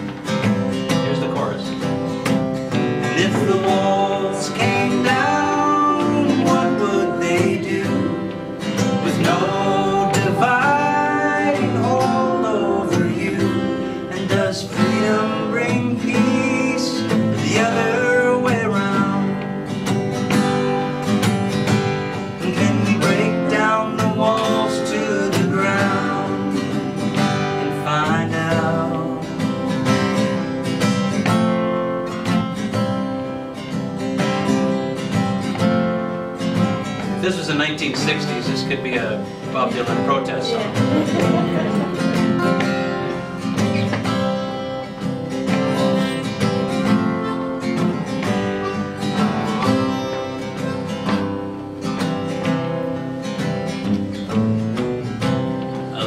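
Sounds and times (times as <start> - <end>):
acoustic guitar strummed: 0.0 - 56.0
man singing: 3.0 - 19.6, 22.3 - 29.9, 37.2 - 44.2.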